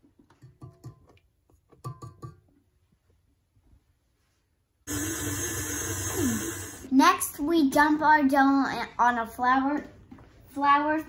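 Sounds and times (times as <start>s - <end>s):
stand mixer running: 4.9s - 6.9s.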